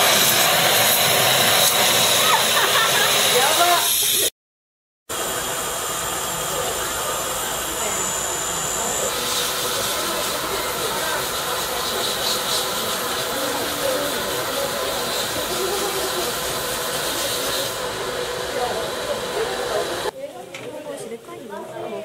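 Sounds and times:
dental handpiece polishing metal: 8.6s - 17.8s.

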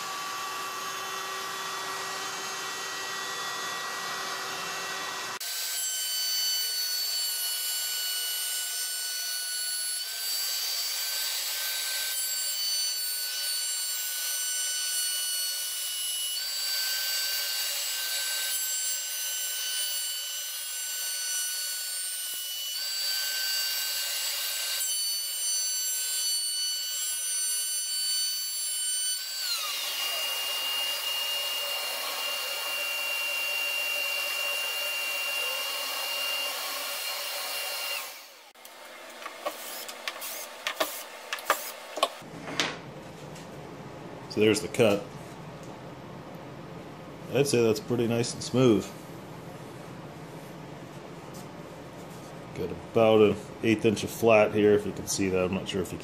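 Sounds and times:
router motor whining: 0.0s - 5.8s, 29.2s - 42.3s
bit cutting wood: 0.0s - 42.3s.

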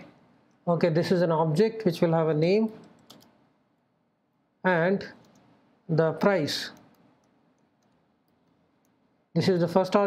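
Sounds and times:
computer keyboard clicks: 2.7s - 3.4s, 5.2s - 5.5s.

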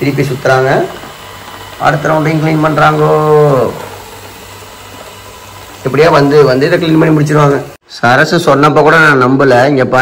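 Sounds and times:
robot vacuum running: 0.0s - 7.8s.

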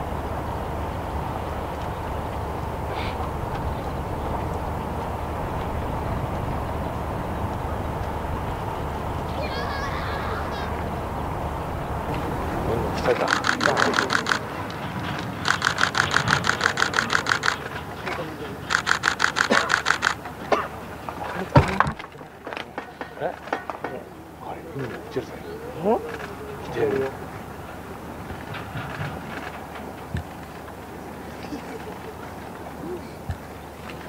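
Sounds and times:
low outdoor background rumble: 0.0s - 34.0s
faint distant voices: 0.7s - 34.0s
camera shutter bursts: 13.1s - 14.5s, 15.4s - 17.7s, 18.7s - 20.2s.

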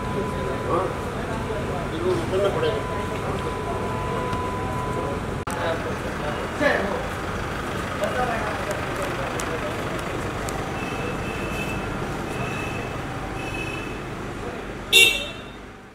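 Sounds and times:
vehicle moving off slowly: 0.0s - 14.8s
traffic noise: 0.0s - 15.9s
voices: 0.0s - 15.9s
car horn toot: 10.6s - 14.0s, 14.9s - 15.8s
short high beeps: 10.6s - 14.0s.

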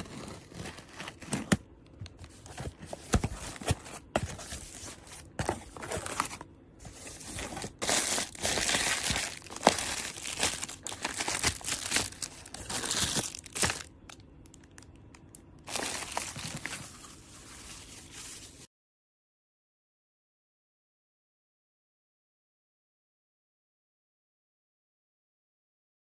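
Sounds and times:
plastic packs crinkling in box: 0.0s - 18.7s.

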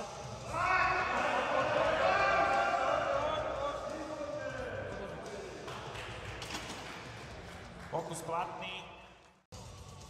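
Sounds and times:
voices cheering in a hall: 0.0s - 6.2s.

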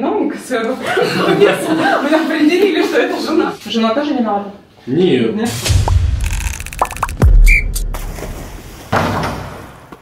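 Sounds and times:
deep bass hit dropping in pitch: 5.5s - 8.6s.

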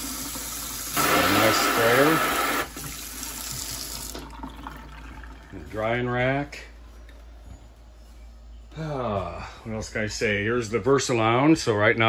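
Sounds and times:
faucet running into sink: 0.0s - 5.6s.

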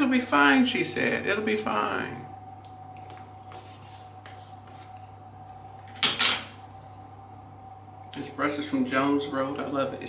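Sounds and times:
low room tone hum: 0.0s - 10.0s.

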